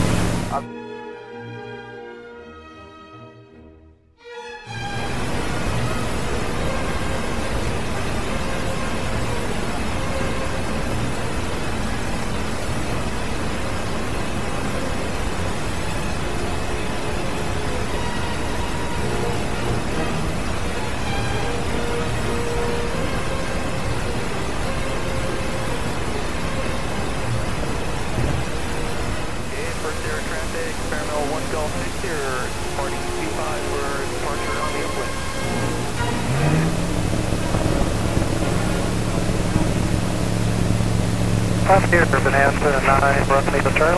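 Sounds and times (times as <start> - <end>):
light aircraft engine and propeller: 0.0 - 0.7, 4.7 - 43.9
wind noise: 35.6 - 41.9.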